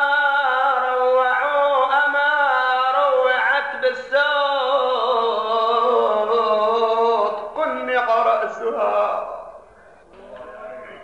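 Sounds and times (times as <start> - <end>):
man chanting into a microphone: 0.0 - 9.6.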